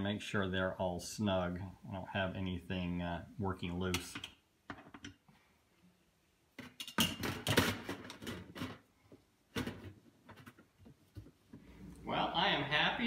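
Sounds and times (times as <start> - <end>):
parts clattering on steel tub: 6.6 - 8.9.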